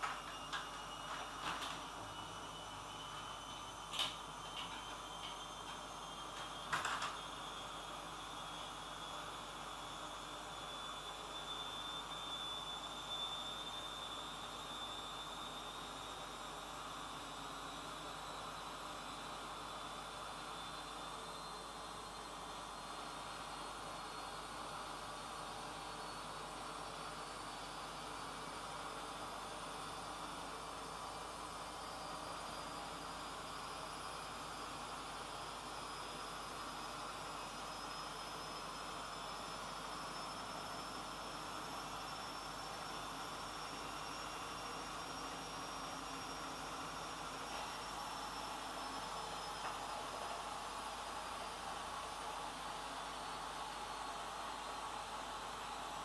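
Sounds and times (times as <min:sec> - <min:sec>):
faint high whine: 0:00.0 - 0:56.0.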